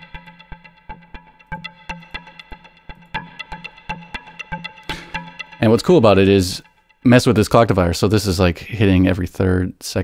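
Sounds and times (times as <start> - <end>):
synth pitched plucks: 0.0 - 7.5.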